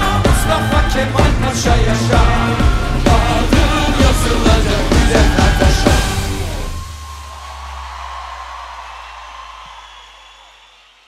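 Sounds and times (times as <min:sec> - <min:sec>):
concert crowd cheering: 0:00.0 - 0:11.0.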